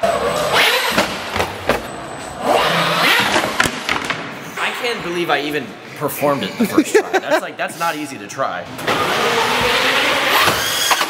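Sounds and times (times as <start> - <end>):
tires spinning: 0.0 - 3.6, 8.8 - 11.0
toy truck motor revving: 0.1 - 1.0, 8.8 - 11.0.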